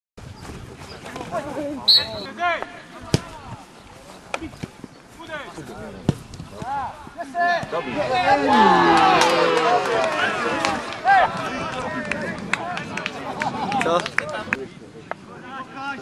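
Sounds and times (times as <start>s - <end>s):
footballers shouting: 6.5s - 14.4s.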